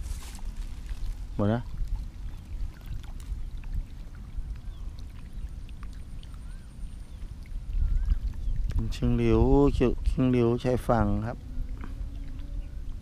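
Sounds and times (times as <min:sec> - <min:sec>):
wind rumble on microphone: 0:00.0 - 0:13.0.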